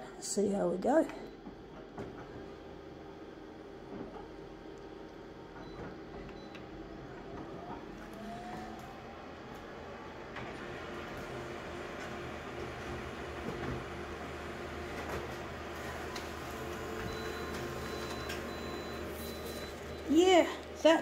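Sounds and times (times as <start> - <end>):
copier machine whirring: 1.8 - 21.0
rising machine whine: 6.4 - 21.0.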